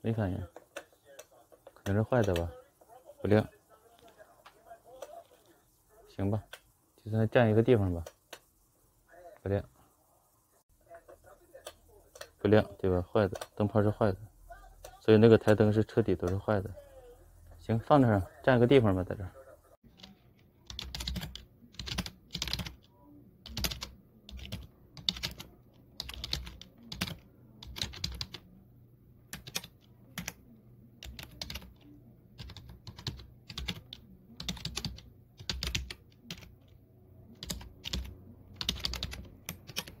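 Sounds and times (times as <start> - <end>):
computer keyboard typing: 19.9 - 28.4, 29.3 - 30.4, 31.0 - 31.8, 32.4 - 40.0.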